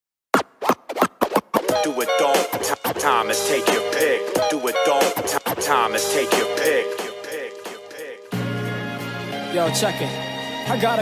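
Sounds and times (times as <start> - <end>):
turntable scratching: 0.3 - 8.3
hip hop track: 0.4 - 11.0.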